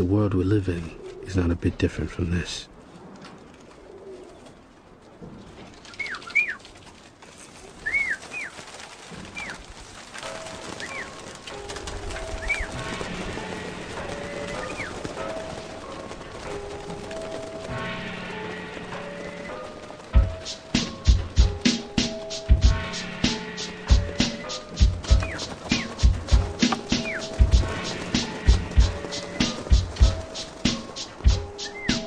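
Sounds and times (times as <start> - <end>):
bird chirps: 5.4 - 6.7, 7.7 - 8.6, 9.3 - 9.6, 10.6 - 11.2, 12.3 - 12.8, 14.2 - 15.0, 23.9 - 32.0
music with long held notes: 11.6 - 32.0.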